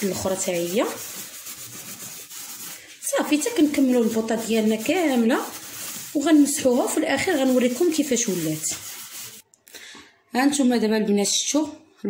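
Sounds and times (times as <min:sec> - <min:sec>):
hand scrubbing burner cap: 0:00.0 - 0:09.4.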